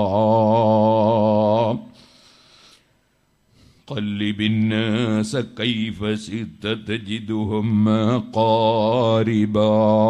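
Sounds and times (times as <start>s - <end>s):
man chanting: 0.0s - 1.9s, 3.9s - 10.0s
steady low hum: 0.0s - 10.0s.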